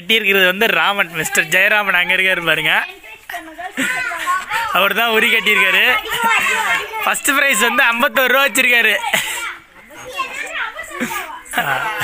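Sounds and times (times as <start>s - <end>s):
children calling out and chattering: 0.0s - 12.0s.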